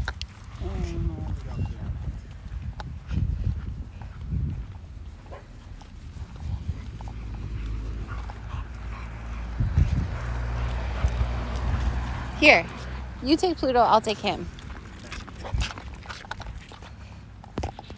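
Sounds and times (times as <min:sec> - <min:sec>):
dog sniffing grass: 0:00.0 - 0:13.2.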